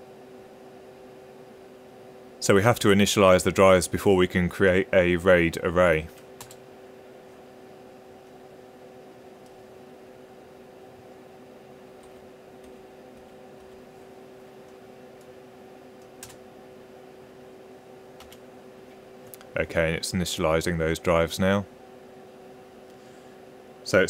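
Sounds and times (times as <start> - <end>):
server hum: 0.0 - 24.0
computer keyboard keystrokes: 6.4 - 6.6, 16.0 - 16.4, 18.2 - 18.4.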